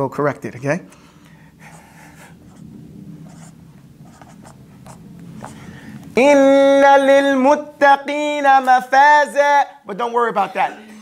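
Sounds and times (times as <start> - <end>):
marker scratching on whiteboard: 1.6 - 5.7.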